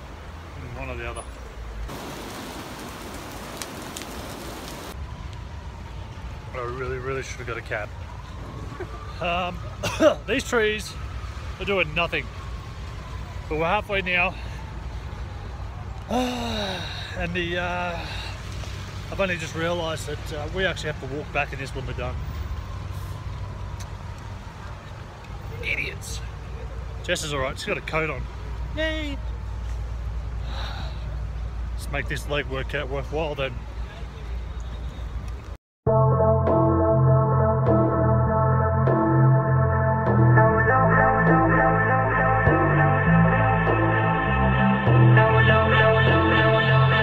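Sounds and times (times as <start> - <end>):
heavy rain on street: 0.0 - 34.4
traffic on a wet road: 0.0 - 35.6
heavy rain falling: 1.6 - 6.8.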